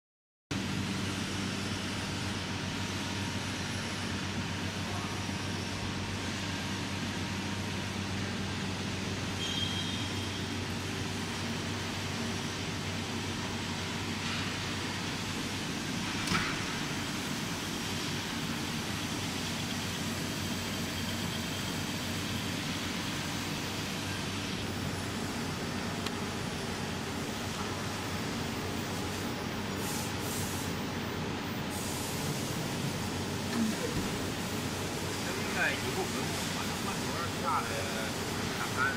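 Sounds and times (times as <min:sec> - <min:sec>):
welding arc humming and hissing: 0:00.6 - 0:38.9.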